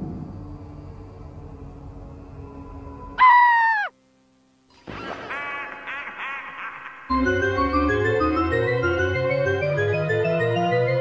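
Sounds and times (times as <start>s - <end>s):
cartoon cry falling in pitch: 3.2s - 3.9s
repeated pitched cartoon calls: 3.2s - 3.9s.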